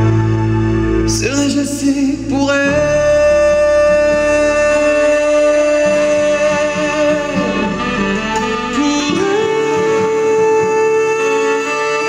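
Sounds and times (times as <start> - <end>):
live band accompaniment: 0.0 - 12.0
singer holding long note: 0.0 - 12.0.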